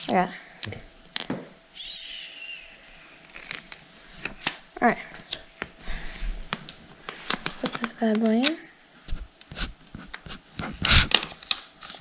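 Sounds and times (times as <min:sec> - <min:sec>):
paper peeling clicks and crackles: 0:03.2 - 0:04.6, 0:10.1 - 0:12.0.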